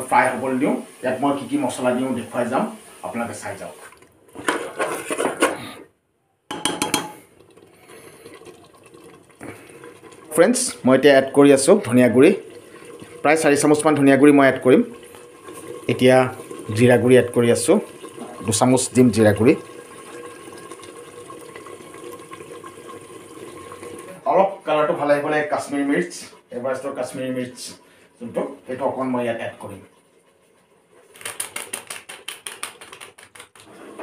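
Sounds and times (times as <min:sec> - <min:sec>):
food sizzling and bubbling: 0:00.0 - 0:05.5, 0:06.5 - 0:31.1.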